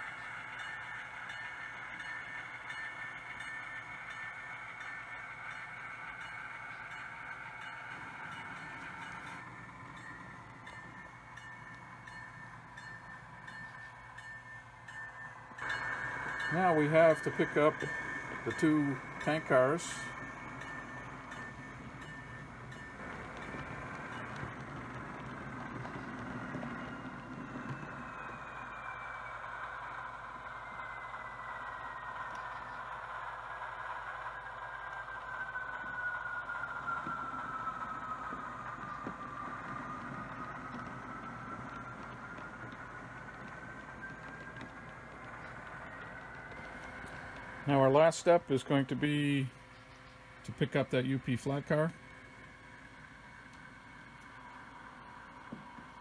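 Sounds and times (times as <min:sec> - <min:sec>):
model train rolling hum: 0:00.0 - 0:56.0
thin motor whine: 0:00.0 - 0:56.0.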